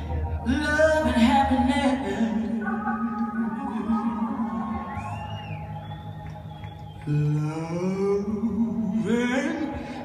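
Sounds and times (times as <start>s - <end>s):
organ chords: 0.0s - 10.0s.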